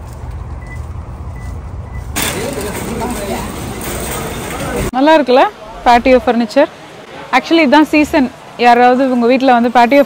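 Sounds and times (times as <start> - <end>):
traffic: 0.0 - 10.0
shopping cart rolling: 2.2 - 4.9
people talking: 2.2 - 10.0.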